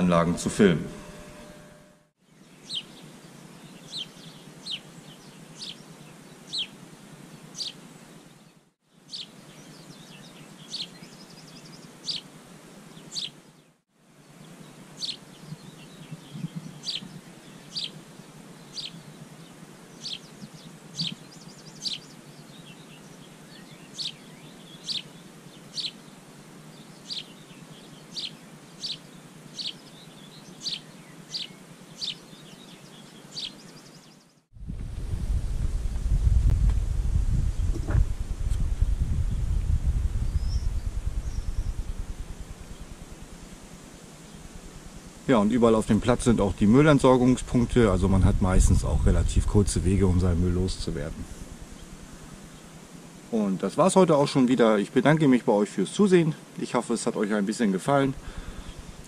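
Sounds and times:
bird chirping: 0:00.0 - 0:34.5, 0:39.3 - 0:43.3
faint background hiss: 0:00.0 - 0:59.0.

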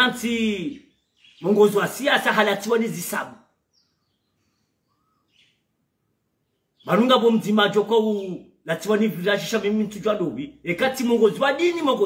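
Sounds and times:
man's voice: 0:00.0 - 0:03.5, 0:06.8 - 0:12.0
faint bird chirp: 0:00.0 - 0:12.0.

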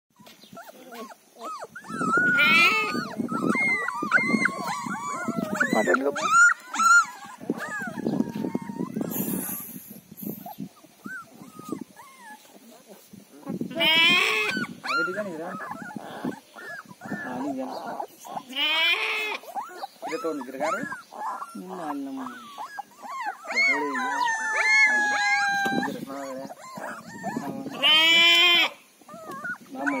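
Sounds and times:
puppies whining and whimpering: 0:00.2 - 0:30.0.

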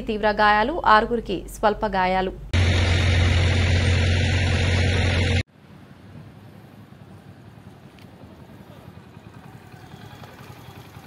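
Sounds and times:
road traffic rumble: 0:02.5 - 0:11.0.

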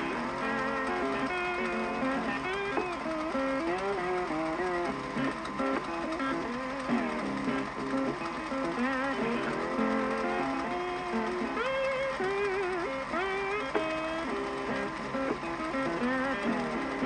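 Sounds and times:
plucked guitar melody: 0:00.0 - 0:17.0.

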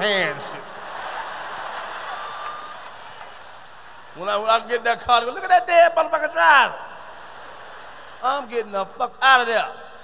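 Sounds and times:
audience laughing: 0:00.6 - 0:02.5, 0:07.0 - 0:08.2.

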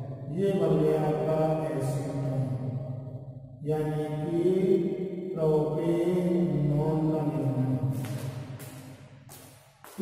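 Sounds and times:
man's voice holding long tones: 0:00.0 - 0:02.8, 0:03.6 - 0:08.4.

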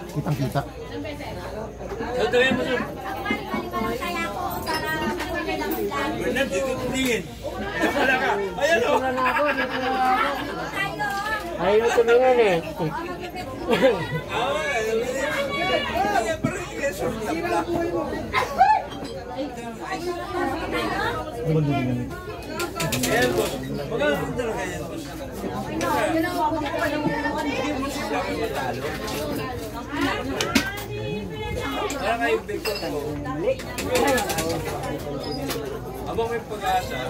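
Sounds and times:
people chatting: 0:00.0 - 0:37.0
people talking: 0:00.0 - 0:37.0.

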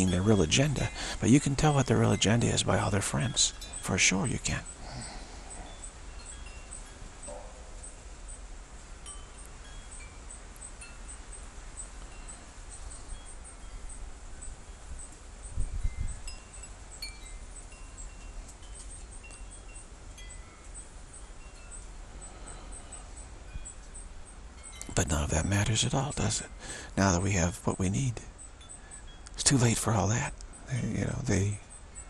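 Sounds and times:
faint steady hiss: 0:00.0 - 0:32.0
wind chimes tinkling: 0:00.0 - 0:32.0.

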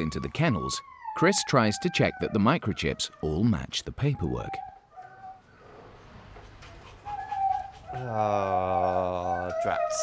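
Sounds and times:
dog whining: 0:00.0 - 0:05.5, 0:06.6 - 0:10.0.

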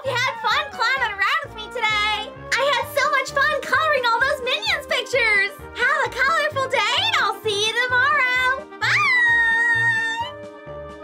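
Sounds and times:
cheerful music with steady beat: 0:00.0 - 0:11.0.

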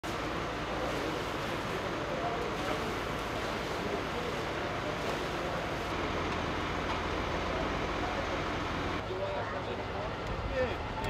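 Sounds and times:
diesel engine idling: 0:00.1 - 0:11.0.

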